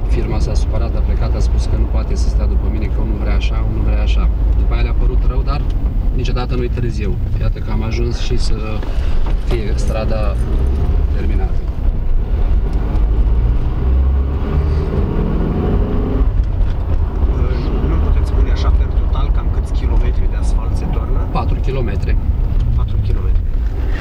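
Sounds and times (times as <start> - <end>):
car engine and road rumble: 0.0 - 24.0.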